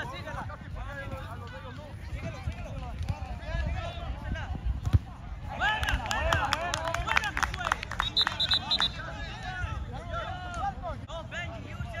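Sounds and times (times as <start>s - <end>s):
wind rumble on microphone: 0.0s - 7.0s.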